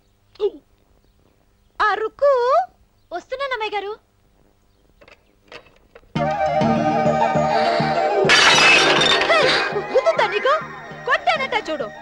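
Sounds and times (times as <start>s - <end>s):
shattering crash: 8.3s - 9.8s
film background music: 9.3s - 12.0s
woman's voice: 9.3s - 12.0s.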